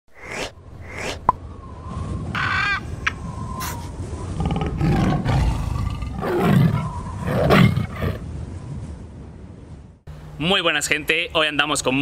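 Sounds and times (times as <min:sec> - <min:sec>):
tiger roaring: 0:04.4 - 0:08.2.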